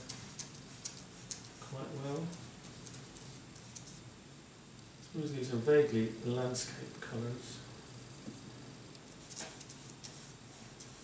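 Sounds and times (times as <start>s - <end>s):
brush dabbing paint on paper: 0.0s - 4.1s, 9.0s - 11.0s.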